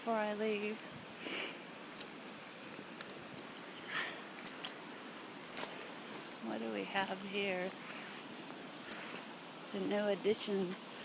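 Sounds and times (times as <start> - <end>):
footsteps on gravel: 0.0 - 10.0
river running over rocks: 0.0 - 11.0.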